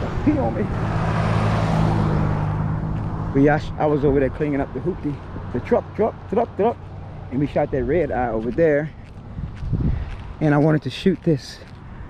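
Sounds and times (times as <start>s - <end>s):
road noise: 0.0s - 12.0s
truck engine drone: 0.0s - 12.0s.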